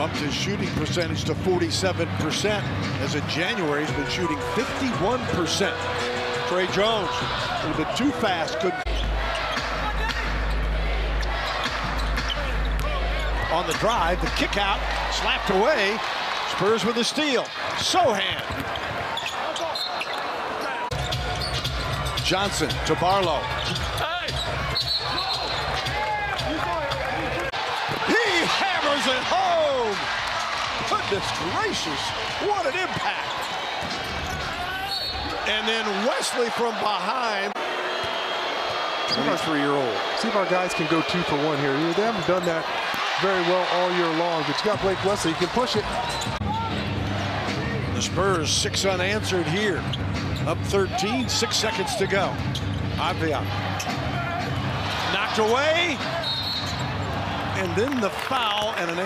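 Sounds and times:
arena crowd noise: 0.0s - 59.0s.

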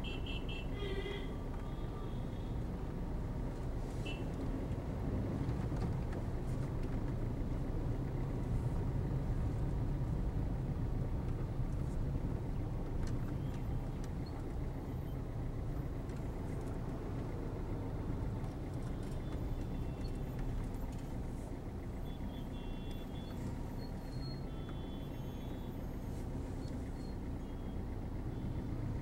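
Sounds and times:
car engine rumble: 0.0s - 29.0s.

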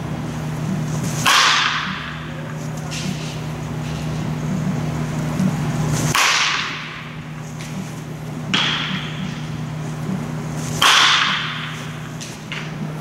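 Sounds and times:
baseball bat cracking balls: 0.7s - 4.3s, 5.3s - 13.0s.

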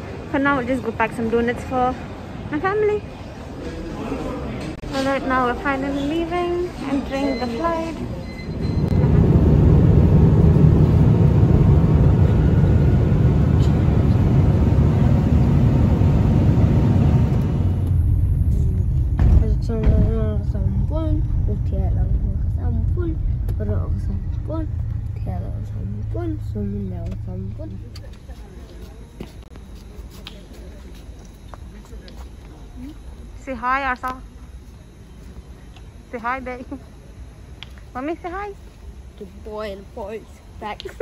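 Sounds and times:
voices talking: 0.4s - 9.0s
jet airliner cabin rushing noise: 7.8s - 28.0s
car ride rumble: 8.0s - 29.5s.

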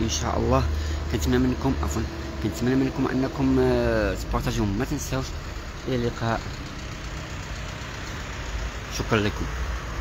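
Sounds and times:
street traffic noise: 0.0s - 10.0s
truck driving past: 0.0s - 10.0s.

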